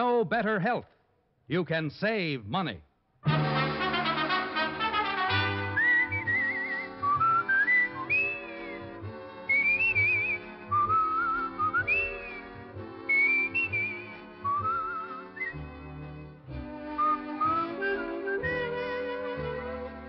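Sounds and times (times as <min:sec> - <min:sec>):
soft orchestral backing with brass: 0:03.2 - 0:20.0
whistled melody with vibrato: 0:03.9 - 0:20.0.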